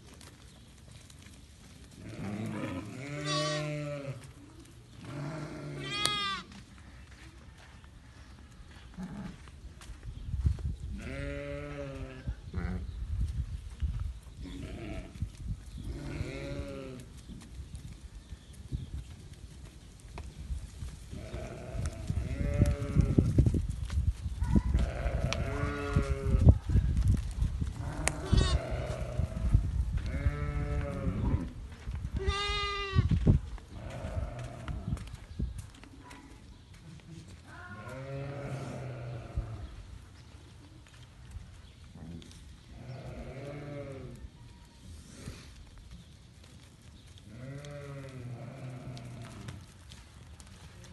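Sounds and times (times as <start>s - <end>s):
sheep bleating: 2.1s - 4.2s, 5.1s - 6.6s, 27.9s - 29.2s, 37.5s - 39.4s.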